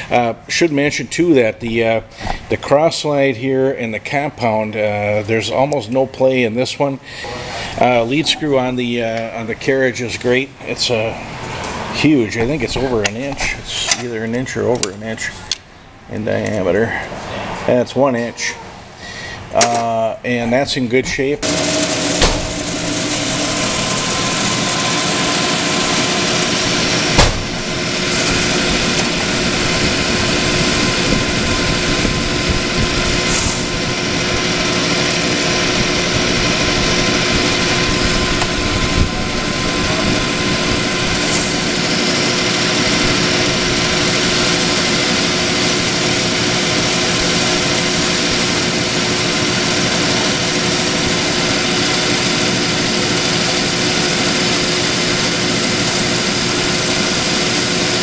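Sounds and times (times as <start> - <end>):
metal lathe cutting steel: 21.4 - 58.0.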